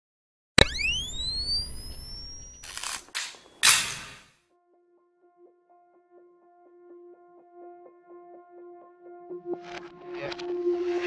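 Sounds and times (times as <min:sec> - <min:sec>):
camera flash click: 0:00.6 - 0:04.3
flash charging whine: 0:00.6 - 0:04.3.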